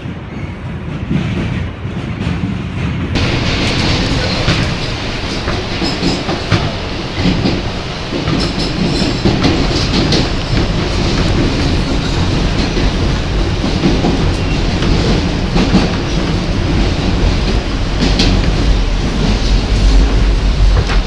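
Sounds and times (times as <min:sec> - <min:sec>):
subway car rumbling on track: 0:00.0 - 0:21.0
wheels clicking on rails: 0:00.9 - 0:21.0.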